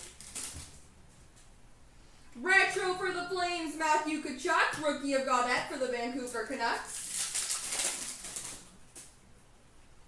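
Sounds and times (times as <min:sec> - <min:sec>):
foil wrapper crinkling: 0:00.0 - 0:00.9, 0:06.8 - 0:09.1.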